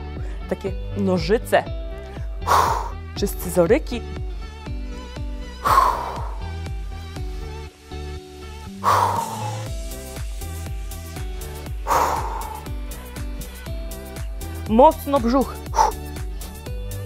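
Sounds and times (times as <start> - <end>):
workout music with steady beat: 1.7 - 17.0
forceful exhalation: 2.4 - 3.0, 5.6 - 6.6, 8.8 - 9.7, 11.8 - 12.7.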